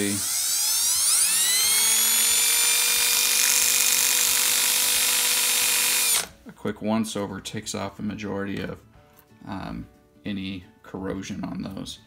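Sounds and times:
cordless drill whining: 0:00.0 - 0:06.4.

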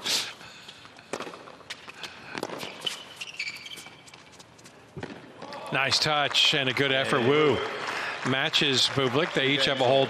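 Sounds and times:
tennis ball struck by racquets: 0:01.1 - 0:03.0.

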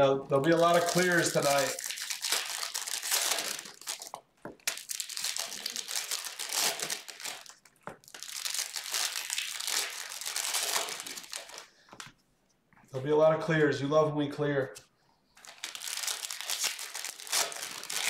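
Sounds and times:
foil wrappers crinkling and tearing: 0:00.3 - 0:11.9, 0:15.4 - 0:18.0.

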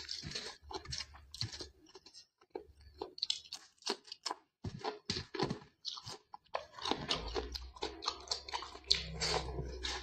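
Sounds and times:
wet chewing and crunching: 0:00.0 - 0:10.0.

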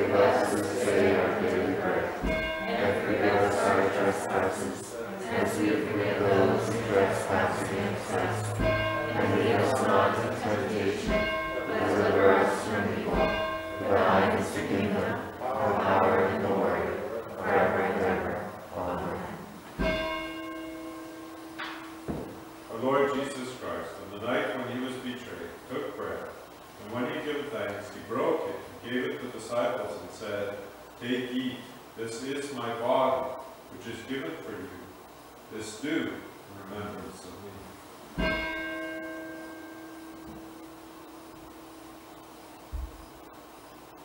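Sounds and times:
church bell ringing: 0:00.0 - 0:16.9, 0:19.8 - 0:22.7, 0:38.2 - 0:42.2.

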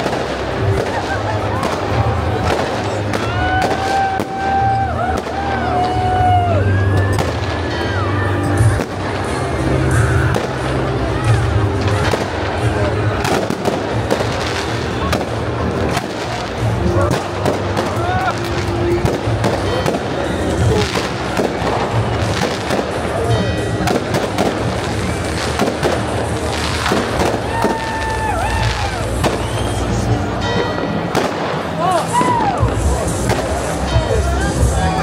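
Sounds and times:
crowd voices: 0:00.0 - 0:35.0
fireworks bangs and crackles: 0:00.0 - 0:35.0
music playing: 0:00.0 - 0:35.0.

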